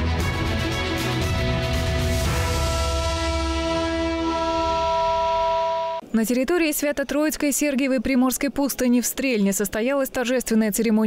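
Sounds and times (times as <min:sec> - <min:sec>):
bass: 0:00.0 - 0:05.0
theme music with held chord: 0:00.0 - 0:05.6.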